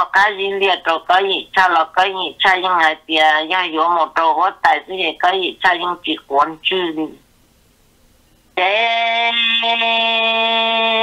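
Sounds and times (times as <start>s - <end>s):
person singing long note: 8.6s - 11.0s.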